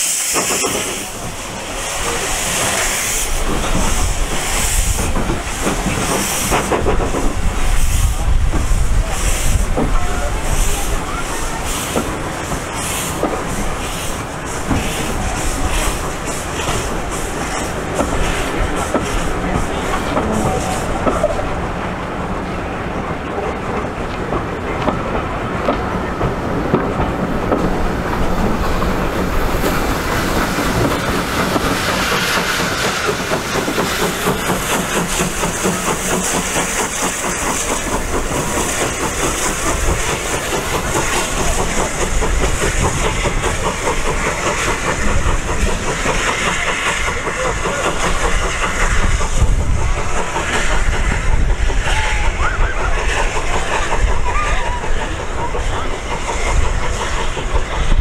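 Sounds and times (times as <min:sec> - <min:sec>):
faint hiss of steam: 0:00.0 - 0:23.9, 0:25.0 - 0:58.0
train wheels clicking over rail joints: 0:00.0 - 0:58.0.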